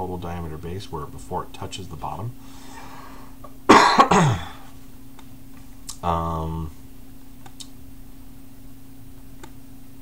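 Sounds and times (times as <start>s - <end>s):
man coughing: 3.7s - 4.7s.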